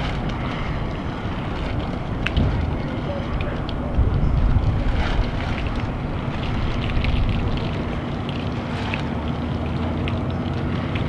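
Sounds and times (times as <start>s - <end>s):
wind buffeting microphone: 0.0s - 9.6s
steady low hum: 0.0s - 11.0s.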